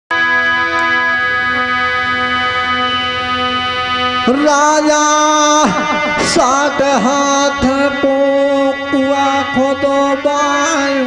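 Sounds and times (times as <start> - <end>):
harmonium chord: 0.1 - 11.0.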